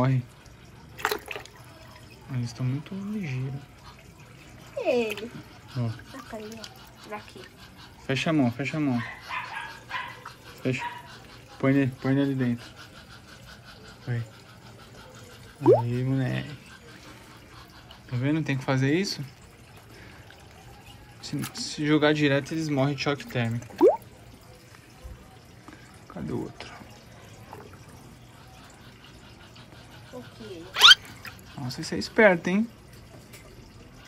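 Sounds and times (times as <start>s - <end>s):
water sloshing and dripping: 0.0s - 34.0s.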